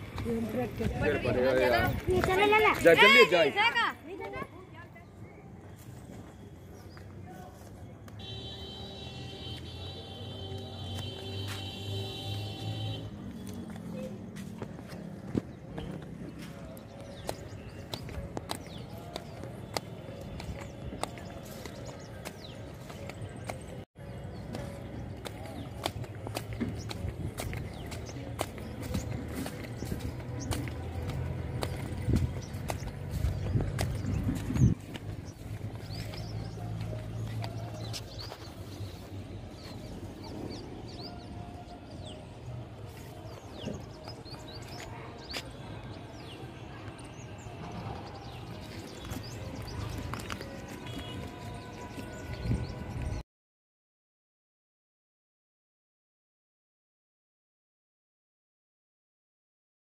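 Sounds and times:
faint music: 0:00.0 - 0:53.2
footsteps on railway track stones: 0:00.0 - 0:53.2.

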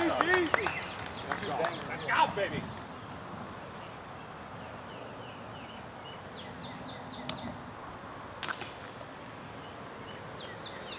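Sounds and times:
steady outdoor hiss: 0:00.0 - 0:10.9.

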